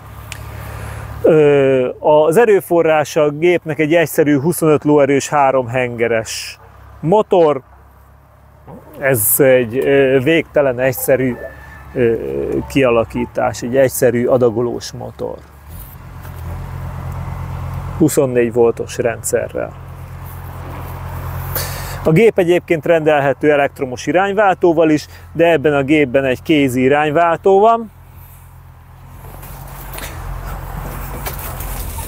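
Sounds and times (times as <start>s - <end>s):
diesel engine idling: 0.0s - 32.0s
knocks and rustles of climbing: 29.1s - 32.0s.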